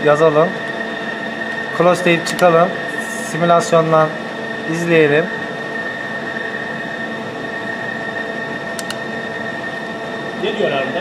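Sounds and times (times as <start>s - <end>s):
lathe humming with high whine: 0.0s - 11.0s
control panel key clicks: 8.8s - 9.0s.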